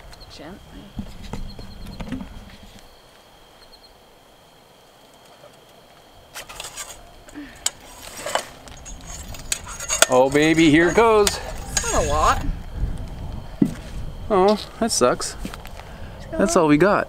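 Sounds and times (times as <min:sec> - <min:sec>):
plunger rod scraping in metal tube: 0:06.4 - 0:07.0, 0:07.8 - 0:12.4.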